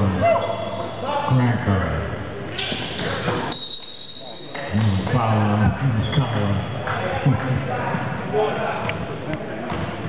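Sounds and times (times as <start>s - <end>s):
people talking in a hall: 0.0s - 10.0s
high whistle-like tone: 3.5s - 4.7s.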